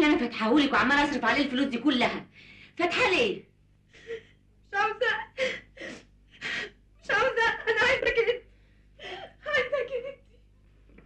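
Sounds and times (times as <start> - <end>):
woman crying: 4.0 - 8.4, 9.0 - 10.4.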